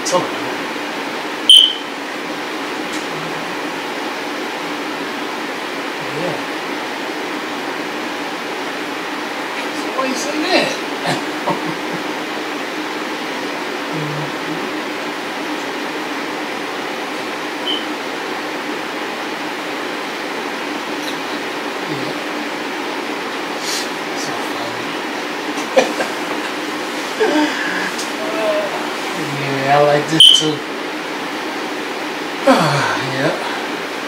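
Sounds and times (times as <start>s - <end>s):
whirring room noise with low hum: 0.0s - 34.0s.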